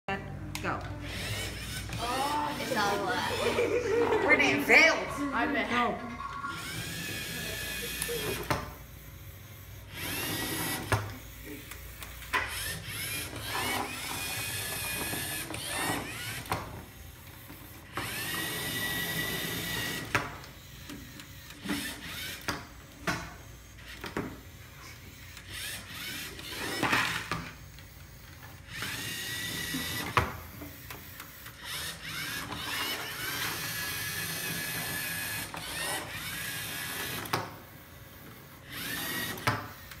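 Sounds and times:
toy robot motors whirring: 0.9 - 4.8, 6.4 - 40.0.

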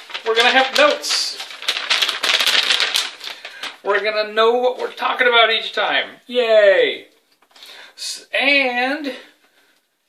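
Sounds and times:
paper rustling and flapping: 0.0 - 5.8
man speaking: 0.2 - 1.5, 3.8 - 7.2, 8.0 - 9.4.

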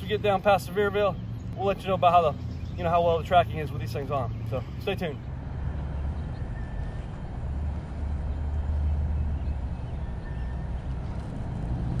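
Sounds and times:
low outdoor rumble: 0.0 - 12.0.

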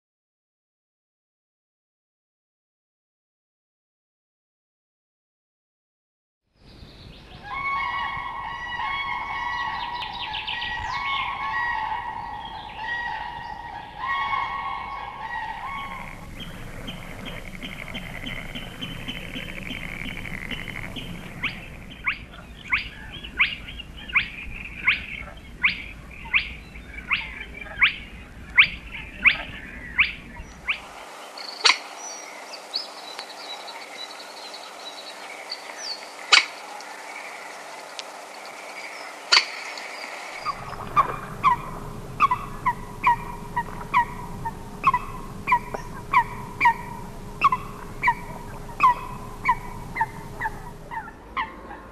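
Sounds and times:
bird rising whistle call: 40.5 - 51.1.

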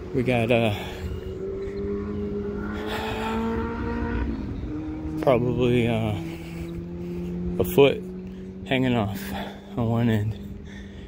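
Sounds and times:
motor hum: 0.0 - 11.0.

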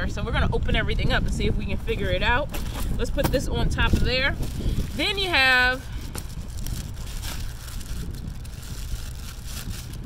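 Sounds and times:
wind buffeting microphone: 0.0 - 10.0
plastic bag crinkling: 3.8 - 10.0.

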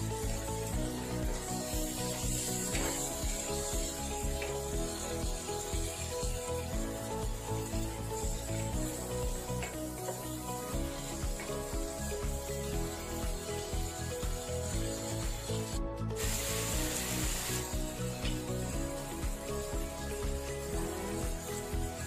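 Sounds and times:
background music with steady beat: 0.0 - 22.0
shrimp sizzling in a pan: 0.0 - 22.0.

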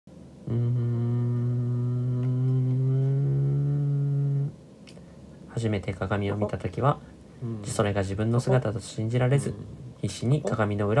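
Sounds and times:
low droning note: 0.5 - 4.5.

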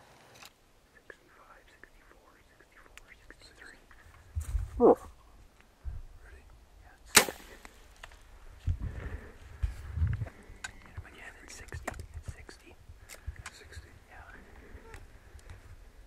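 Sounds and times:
dull low thumps: 4.3 - 5.1, 8.5 - 11.1
bowstring snap: 7.1 - 7.8.

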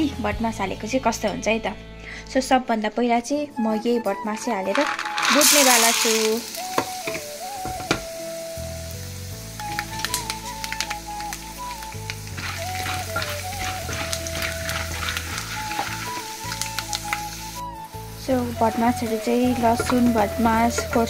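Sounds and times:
background music with melody: 0.0 - 21.0
beans sizzling and popping in oil: 4.3 - 21.0.

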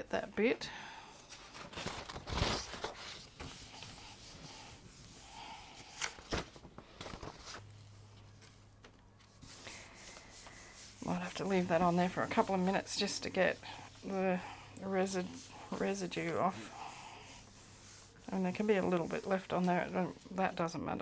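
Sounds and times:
paper rustling: 1.3 - 4.7, 5.8 - 13.8.

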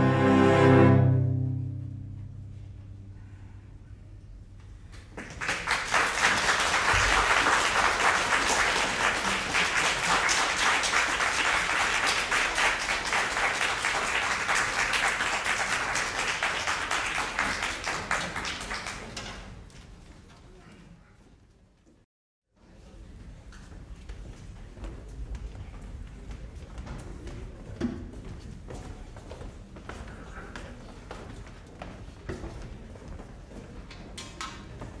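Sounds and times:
audience applauding: 5.0 - 19.4.

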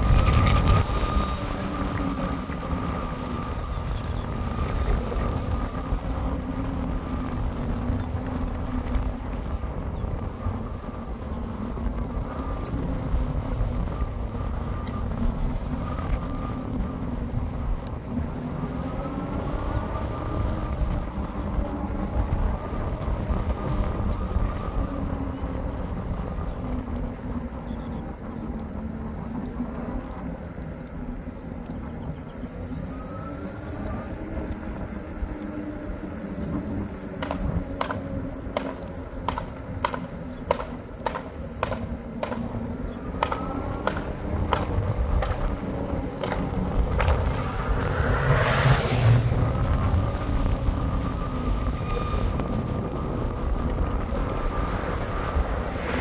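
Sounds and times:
bike motor and tyre hum: 0.0 - 56.0
wind rumble on microphone: 0.0 - 56.0.

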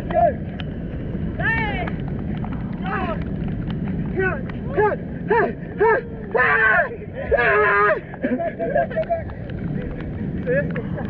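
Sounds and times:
surf rumbling: 0.0 - 11.0
wind: 0.0 - 11.0
man shouting encouragement: 4.2 - 8.0.

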